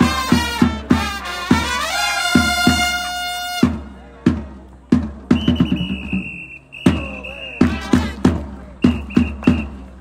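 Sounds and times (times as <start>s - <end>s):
brass phrase: 0.0s - 3.9s, 7.6s - 8.4s
drum beats: 0.0s - 10.0s.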